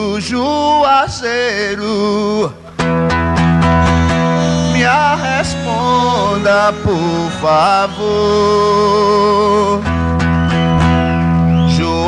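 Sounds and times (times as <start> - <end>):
man singing: 0.0 - 2.6, 4.4 - 10.0, 11.5 - 12.0
acoustic guitar strumming: 0.0 - 12.0.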